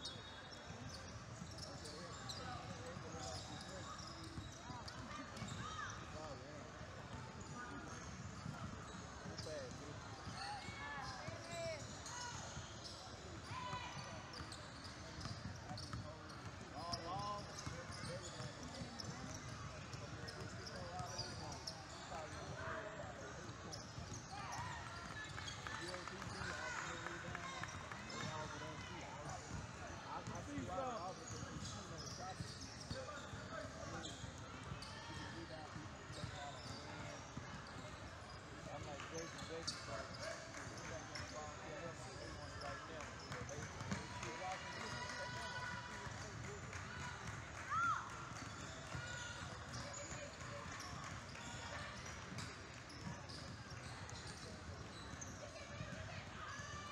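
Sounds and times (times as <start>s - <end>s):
people shouting and chatting: 0.0s - 56.9s.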